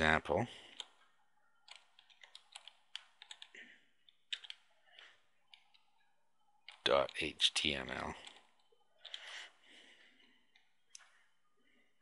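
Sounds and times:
typing on computer keyboard: 0:00.7 - 0:03.6, 0:04.3 - 0:05.8, 0:06.6 - 0:07.2, 0:08.2 - 0:09.3.

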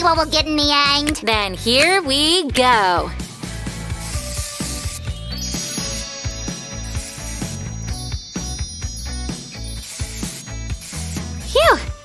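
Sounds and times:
background music with steady beat: 0:00.0 - 0:12.0
aerosol spray can hissing: 0:03.9 - 0:05.1, 0:09.6 - 0:11.5.

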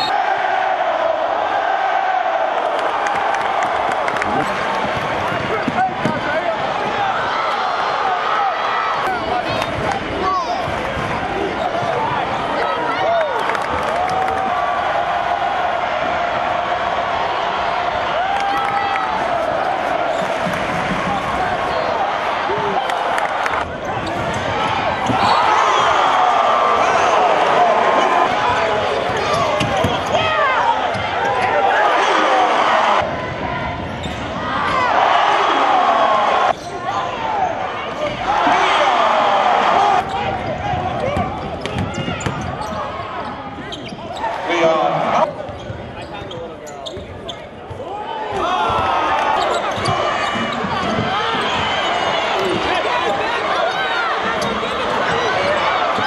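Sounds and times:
arena crowd noise: 0:00.0 - 0:56.0
basketball bouncing: 0:23.6 - 0:25.4, 0:40.5 - 0:42.8, 0:48.7 - 0:52.6.

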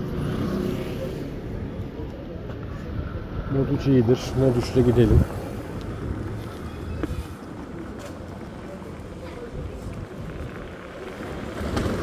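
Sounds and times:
scooter tyres rumbling on paving: 0:00.0 - 0:12.0.

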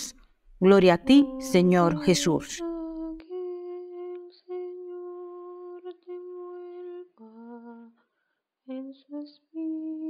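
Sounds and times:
person humming a melody: 0:01.1 - 0:08.0, 0:08.7 - 0:10.0.

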